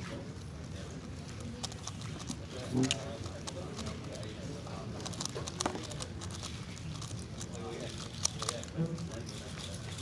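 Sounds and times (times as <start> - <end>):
plastic puzzle cube clicking: 5.0 - 8.8.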